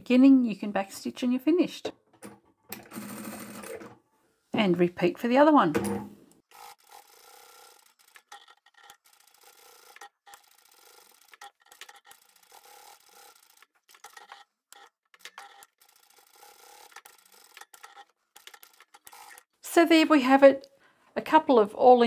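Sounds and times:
faint sewing machine running: 0:02.8 - 0:03.9, 0:06.5 - 0:19.5.

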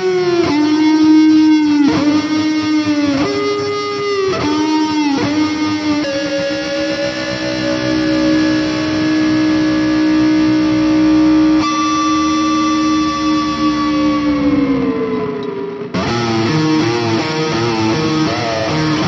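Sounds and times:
electric guitar lead with bends: 0:00.0 - 0:19.0.

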